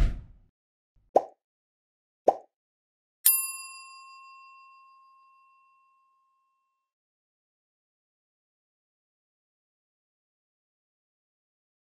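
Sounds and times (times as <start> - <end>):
bright bell ding: 3.3 - 6.4.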